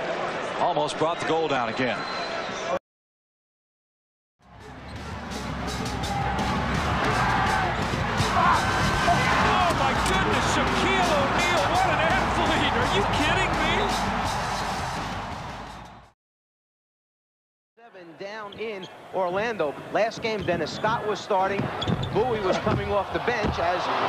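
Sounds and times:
crowd din: 0:04.5 - 0:16.0
shoe squeaks: 0:20.2 - 0:21.0, 0:21.6 - 0:22.6.

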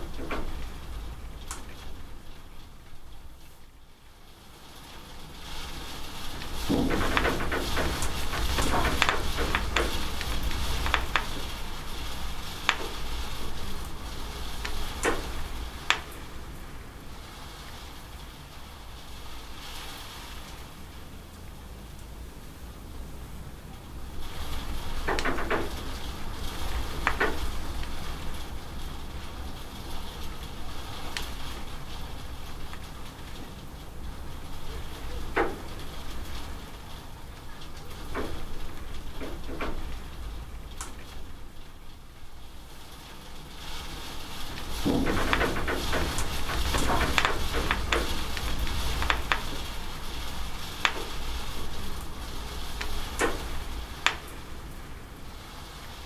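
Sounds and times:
steady rain: 0:00.0 - 0:56.0
water running off a roof edge: 0:00.0 - 0:56.0.

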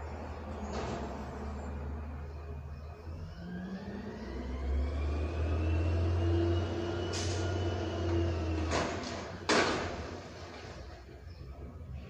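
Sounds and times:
heavy vehicle engine rumble: 0:00.0 - 0:12.0.

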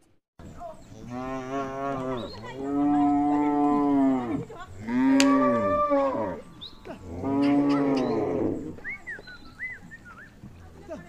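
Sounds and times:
cattle mooing: 0:01.0 - 0:08.8.

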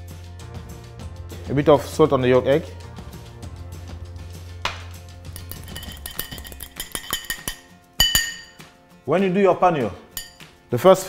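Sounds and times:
fork clicking against glass bowl: 0:05.4 - 0:08.6, 0:10.2 - 0:10.5.

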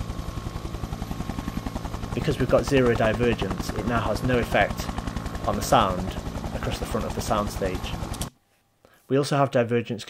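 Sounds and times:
low steady hum: 0:00.0 - 0:09.4
rapid chopping pulse: 0:00.4 - 0:08.3.

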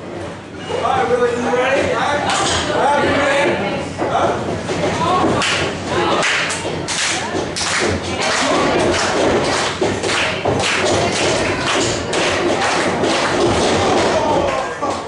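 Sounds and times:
crowd voices: 0:00.0 - 0:15.0.

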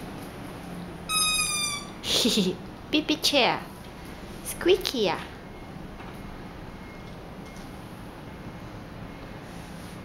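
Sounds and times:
child's chair squeaking: 0:01.1 - 0:02.0.

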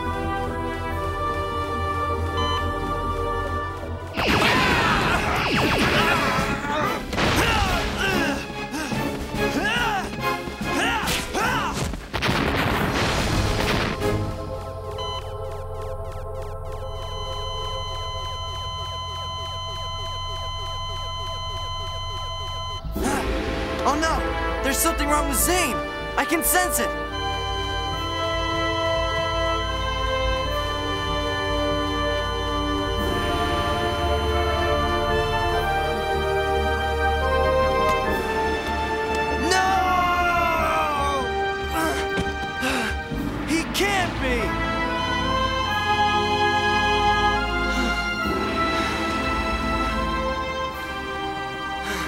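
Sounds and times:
tense background music: 0:00.0 - 0:52.0
electronic zaps: 0:04.1 - 0:06.6
steady tones and low hum: 0:12.2 - 0:26.2
falling electronic chirps: 0:15.0 - 0:23.0, 0:27.0 - 0:35.1.

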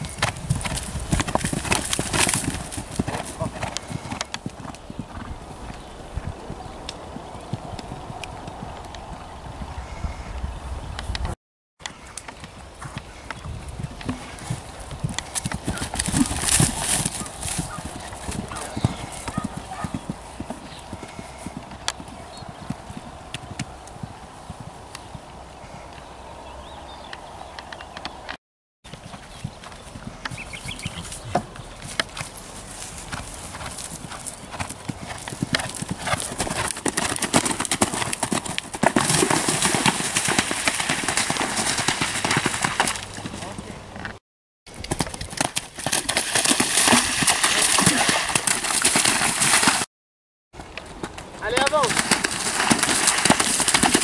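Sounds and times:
horse hooves galloping on turf: 0:00.0 - 0:10.0, 0:12.0 - 0:25.8, 0:28.9 - 0:49.9, 0:50.6 - 0:54.0.

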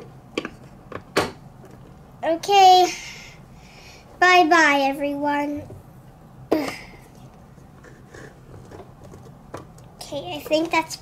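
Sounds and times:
plastic toy handling: 0:07.2 - 0:10.8.

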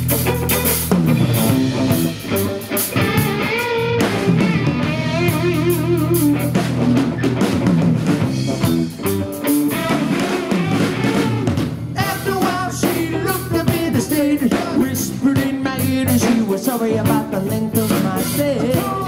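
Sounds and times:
drum kit: 0:00.0 - 0:19.0
electric bass: 0:00.0 - 0:19.0
electric guitar lead: 0:00.0 - 0:19.0.

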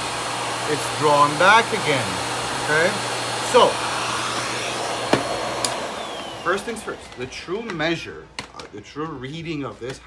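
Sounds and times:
vacuum cleaner running: 0:00.0 - 0:08.5.

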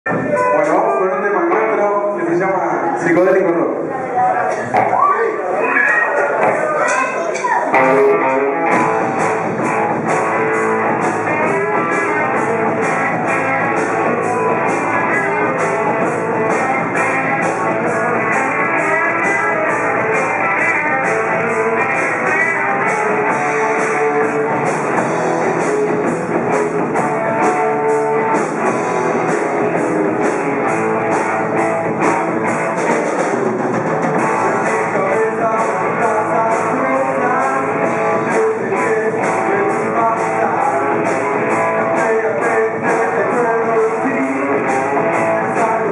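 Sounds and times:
rock band playing live: 0:00.0 - 0:45.9.

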